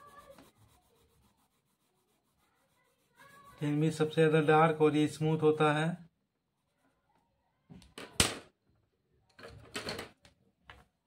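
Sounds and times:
pencil scratching on paper: 0:00.0 - 0:04.8.

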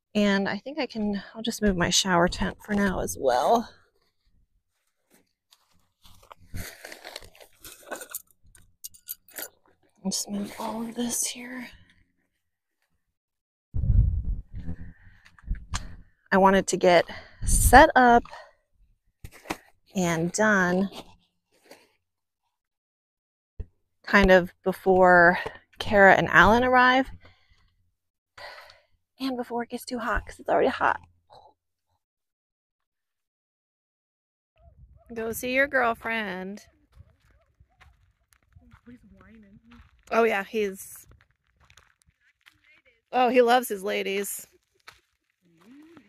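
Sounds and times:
crunching and rustling: 0:03.8 - 0:10.9, 0:36.6 - 0:40.2, 0:40.9 - 0:43.2, 0:44.2 - 0:46.0.

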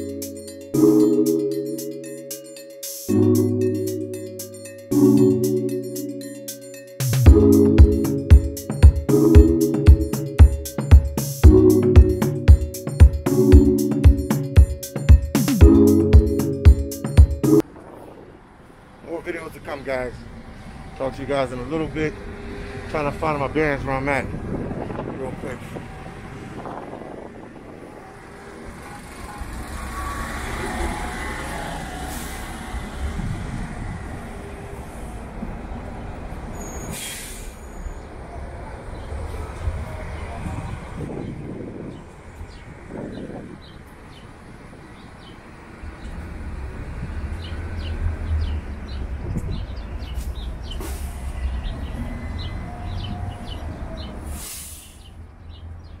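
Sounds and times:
bus engine rumble: 0:17.6 - 0:55.4
short sharp hiss: 0:36.9 - 0:37.7, 0:54.3 - 0:55.0.

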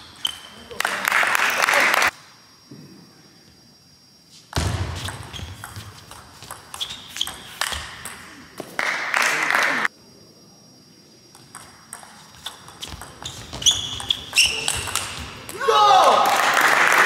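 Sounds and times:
loud shout: 0:15.5 - 0:17.0.

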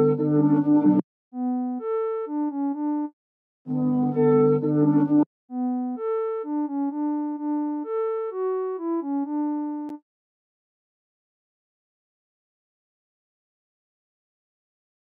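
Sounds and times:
synthesizer lead melody: 0:00.0 - 0:03.1, 0:03.7 - 0:10.0.

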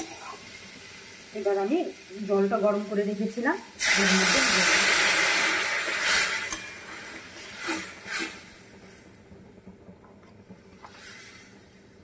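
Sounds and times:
water sizzling in hot oil: 0:00.0 - 0:12.0.

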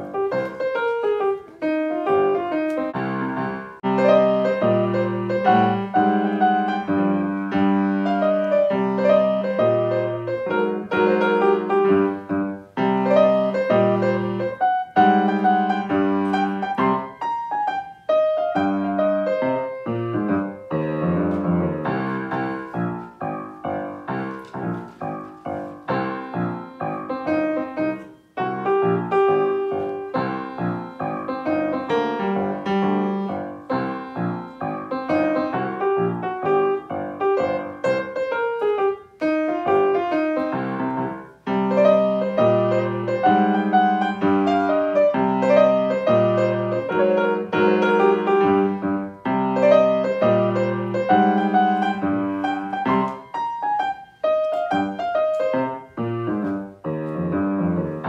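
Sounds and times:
grand piano playing: 0:00.0 - 0:58.0.

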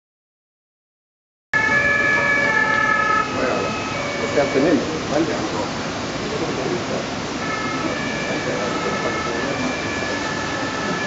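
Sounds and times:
faint background voices: 0:03.2 - 0:11.0.

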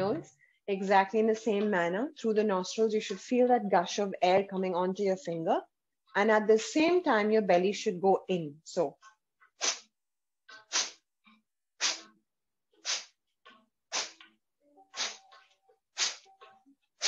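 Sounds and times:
forceful exhales through the nose: 0:11.8 - 0:12.0, 0:12.8 - 0:13.2.

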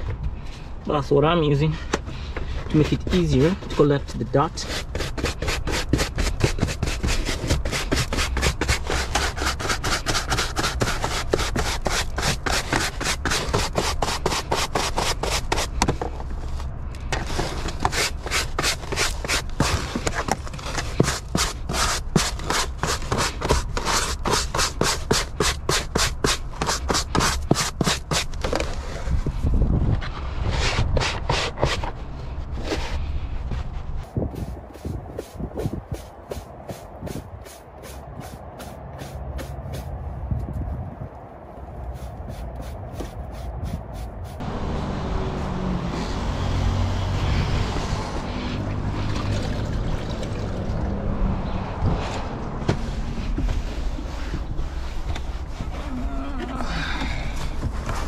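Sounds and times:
brush scrubbing carpet: 0:04.6 - 0:15.8, 0:17.2 - 0:28.4, 0:33.6 - 0:39.9, 0:41.8 - 0:44.4.

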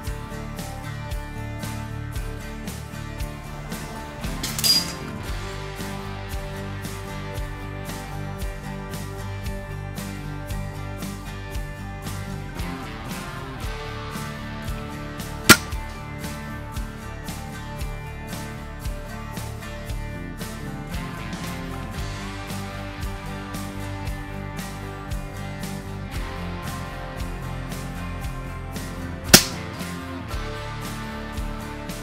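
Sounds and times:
background guitar music: 0:00.0 - 0:32.0
air rifle shot crack: 0:15.5 - 0:15.9, 0:29.4 - 0:29.7.

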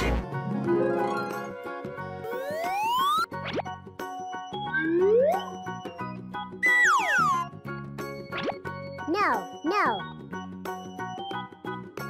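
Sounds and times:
children's background music: 0:00.0 - 0:12.0
rising cartoon whistle glide: 0:02.3 - 0:03.3, 0:04.6 - 0:05.7, 0:06.6 - 0:07.5.

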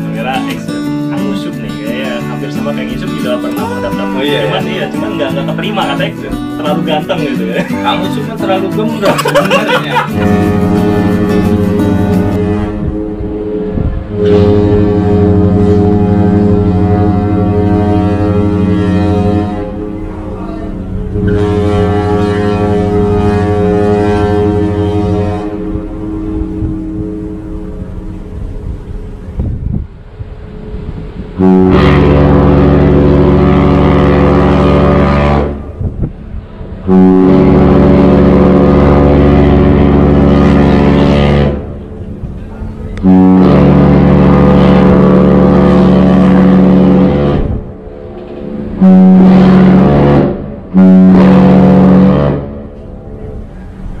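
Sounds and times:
ship's horn blasts: 0:00.0 - 0:54.0.

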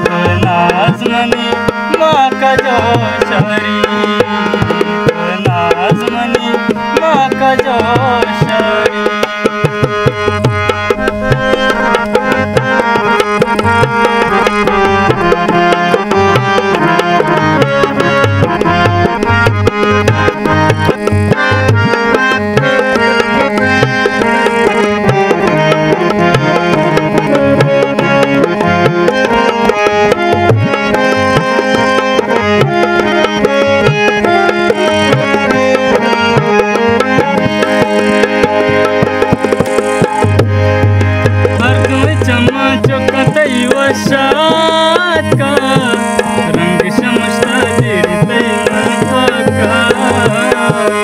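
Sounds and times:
dholak drum rhythm: 0:00.0 - 0:51.0
harmonium melody: 0:00.0 - 0:51.0.

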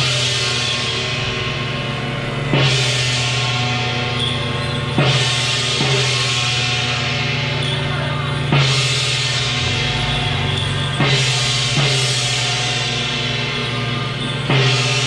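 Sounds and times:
cymbal and gong crashes: 0:00.0 - 0:15.0
drum roll: 0:00.0 - 0:15.0.

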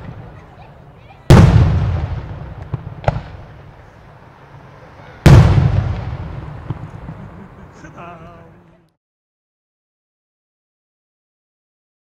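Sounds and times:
firework crack: 0:00.0 - 0:08.6
firework boom echoing: 0:01.3 - 0:03.9, 0:05.2 - 0:08.0.

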